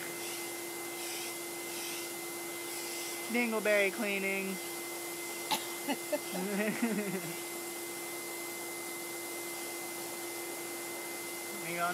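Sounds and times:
vacuum cleaner humming: 0.0s - 11.9s.

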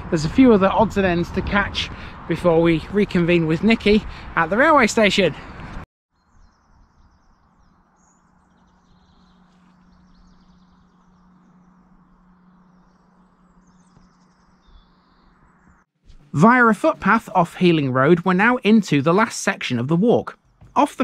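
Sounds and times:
small birds chirping: 6.1s - 15.9s
steady low hum: 6.6s - 18.2s.

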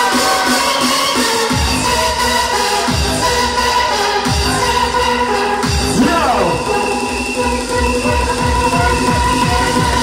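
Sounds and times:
fast rave music over sound system: 0.0s - 10.0s.

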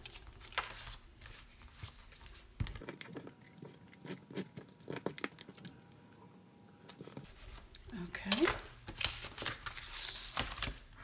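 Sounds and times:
paper rustling: 0.0s - 3.2s, 7.0s - 11.0s.

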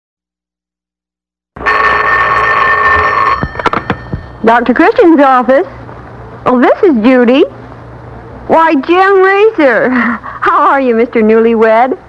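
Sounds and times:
telephone bell ringing: 1.6s - 4.6s.

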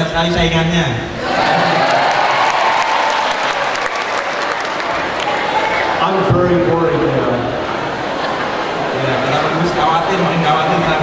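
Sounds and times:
audience applauding: 1.2s - 6.3s
murmur of crowd voices: 3.4s - 11.0s.

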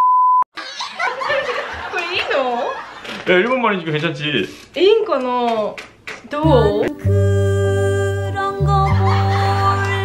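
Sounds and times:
censor bleep: 0.0s - 0.4s
man and woman laughing: 0.6s - 2.1s, 8.8s - 10.0s.

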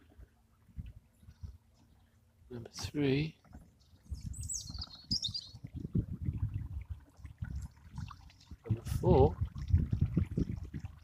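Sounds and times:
bird chirping: 3.8s - 5.6s.

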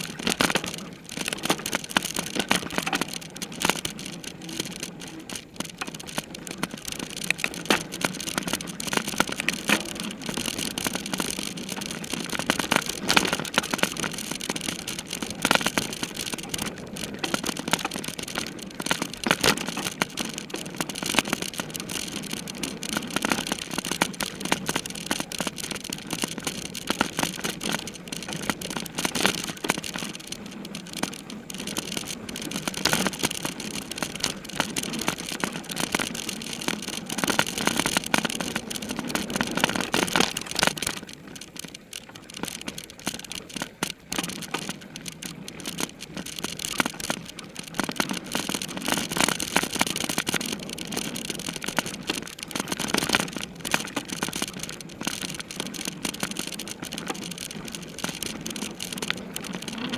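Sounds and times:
bike frame rattling and knocking: 0.0s - 59.9s
tyre noise on dirt: 55.0s - 59.9s.

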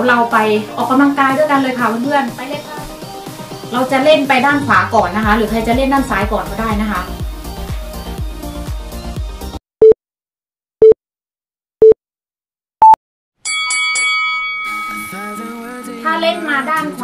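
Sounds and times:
background music: 0.0s - 9.6s, 14.7s - 17.0s
held music chord: 3.0s - 9.0s.

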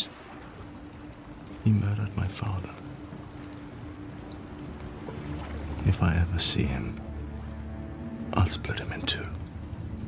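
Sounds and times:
ship low rumble: 0.0s - 10.0s.

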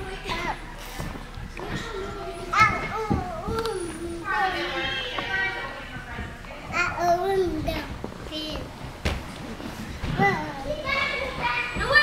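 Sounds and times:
children's voices at play: 1.5s - 5.9s, 6.7s - 8.8s, 10.0s - 12.0s.

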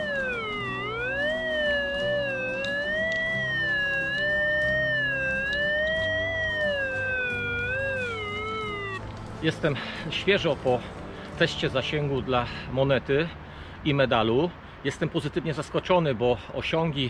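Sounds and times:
metal detector tone: 0.0s - 9.0s.

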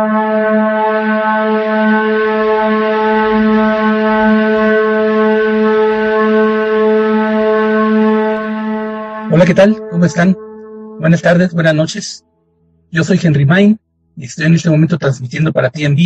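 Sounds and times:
sustained drone note: 0.0s - 15.0s.

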